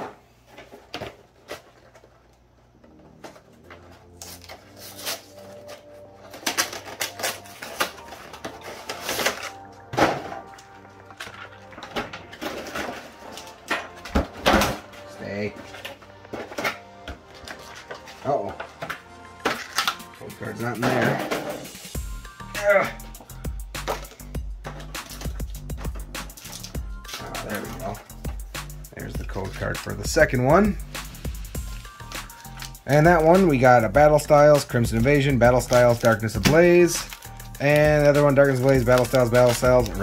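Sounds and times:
cardboard packaging clicks and crinkles: 0:00.4 - 0:20.2, 0:23.8 - 0:28.0, 0:31.6 - 0:33.4, 0:35.2 - 0:40.0
background music: 0:02.1 - 0:40.0.

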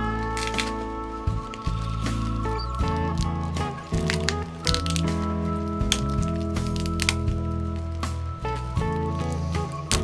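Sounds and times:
background music: 0:00.0 - 0:10.0
hardened drips snapping off: 0:00.3 - 0:08.2.

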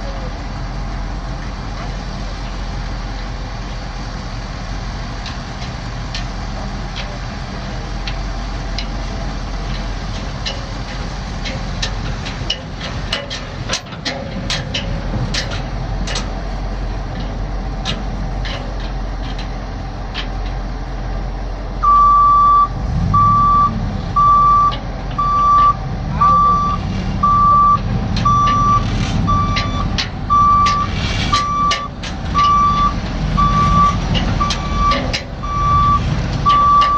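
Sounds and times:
truck engine running: 0:00.0 - 0:36.9
backup alarm beeping: 0:21.8 - 0:36.9.

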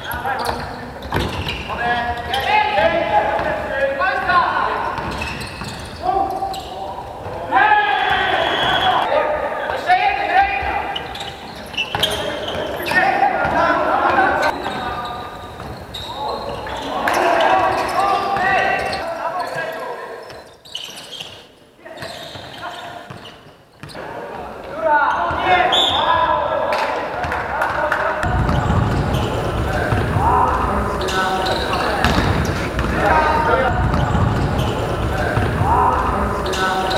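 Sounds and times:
basketball bouncing on court: 0:00.1 - 0:03.6, 0:04.9 - 0:07.4, 0:27.1 - 0:36.9
players shouting: 0:05.9 - 0:14.8, 0:16.0 - 0:20.0, 0:24.0 - 0:36.9
basketball bouncing on floor: 0:27.2 - 0:30.7, 0:32.0 - 0:35.8.

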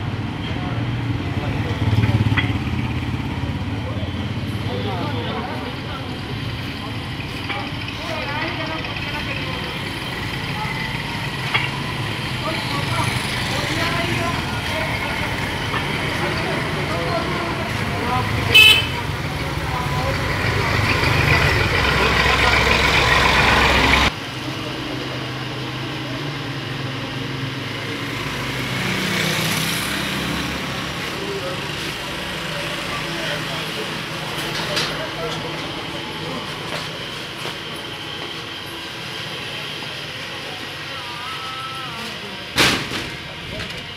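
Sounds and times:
motor vehicles running: 0:00.0 - 0:43.9
car horn toot: 0:18.5 - 0:19.1
faint voices: 0:30.8 - 0:43.9.

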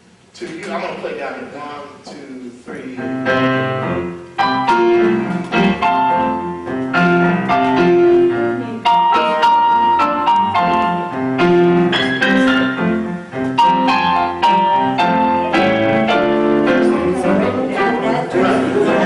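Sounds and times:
electronic keyboard gospel chords: 0:03.1 - 0:19.0.

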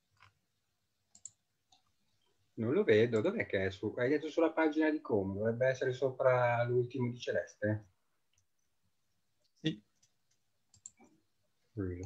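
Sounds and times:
computer clicks: 0:01.1 - 0:01.9, 0:09.4 - 0:11.1.

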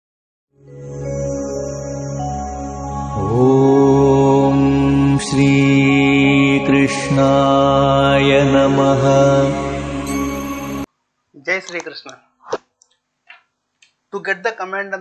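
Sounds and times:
musical drone: 0:00.6 - 0:10.9
person singing long held notes: 0:00.9 - 0:10.9.

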